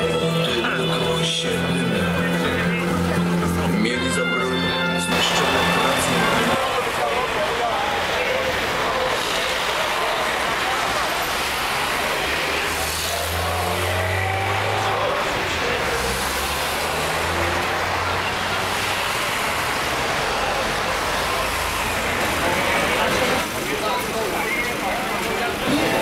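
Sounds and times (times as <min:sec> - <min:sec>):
crowd chatter: 0:00.0 - 0:26.0
vehicle engine hum: 0:00.0 - 0:26.0.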